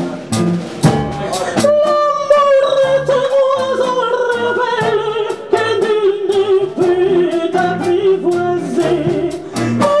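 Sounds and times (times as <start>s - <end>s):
instrumental backing with bass and beat: 0.0s - 10.0s
person singing into microphone: 1.5s - 10.0s.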